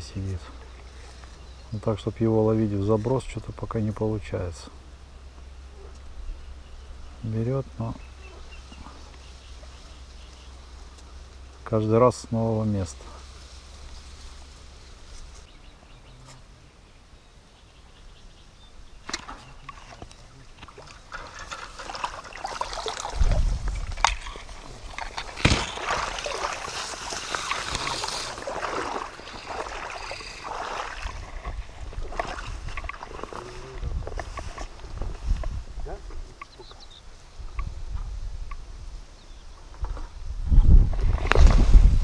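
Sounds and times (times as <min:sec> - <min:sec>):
reeds rustling and crackling: 0:08.0 - 0:16.5, 0:19.0 - 0:42.0.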